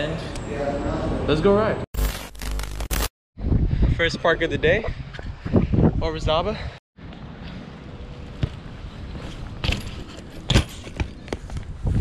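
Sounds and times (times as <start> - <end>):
crackling static transition effect: 2.0 - 3.1
wind buffeting microphone: 3.4 - 6.8, 11.2 - 12.0.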